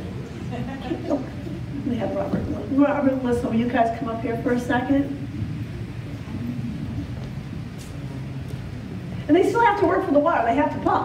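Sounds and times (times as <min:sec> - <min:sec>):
low room rumble: 0:00.0 - 0:11.0.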